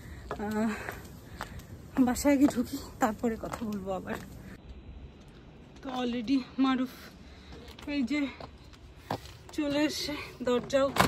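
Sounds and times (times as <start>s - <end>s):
footsteps on pavement: 0.0s - 11.0s
woman's voice: 0.3s - 0.9s, 1.9s - 4.3s, 5.8s - 7.1s, 7.8s - 8.5s, 9.5s - 11.0s.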